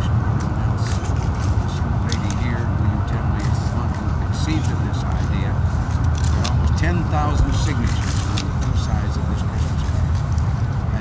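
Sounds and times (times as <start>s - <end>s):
indistinct voices talking: 0.0s - 11.0s
low outdoor rumble: 0.0s - 11.0s.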